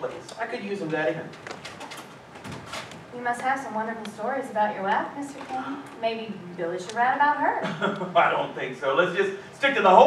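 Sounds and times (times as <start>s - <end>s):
man speaking: 8.0s - 10.0s.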